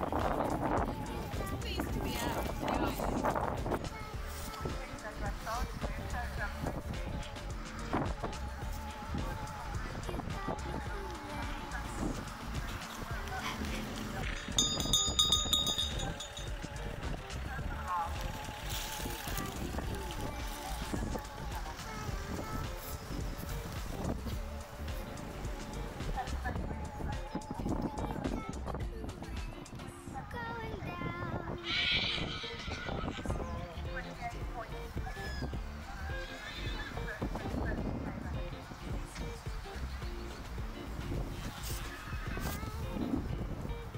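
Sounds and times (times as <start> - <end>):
background music: 0.0 - 43.9
wind rumbling on microphone: 0.0 - 43.9
high steady ringing tone: 14.5 - 16.7
horse whinnying: 31.6 - 33.4, 36.1 - 37.1.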